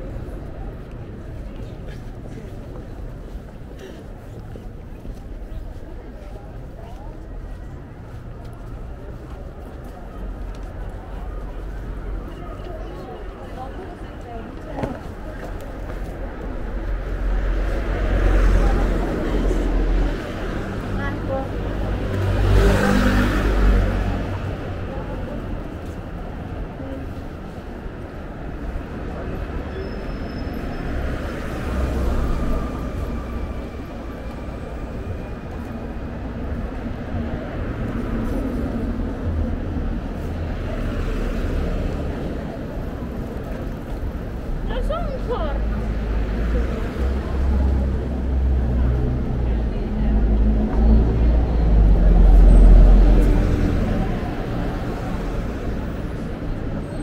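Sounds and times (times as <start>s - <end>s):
bus going by: 0.0s - 57.0s
cars passing: 0.0s - 57.0s
people's voices: 0.0s - 57.0s.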